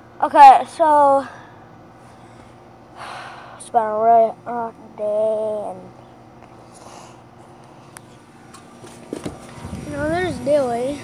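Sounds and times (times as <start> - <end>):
child's voice: 0.2 - 1.4, 3.6 - 5.9, 9.8 - 11.0
car cabin hum: 8.0 - 11.0.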